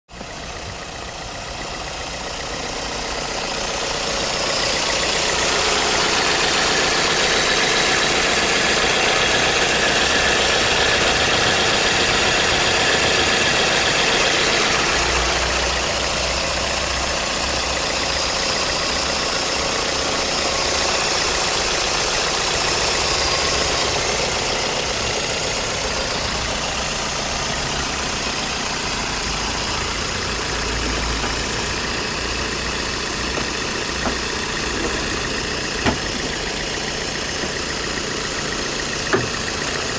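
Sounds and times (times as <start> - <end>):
car engine idling: 0.1 - 39.9.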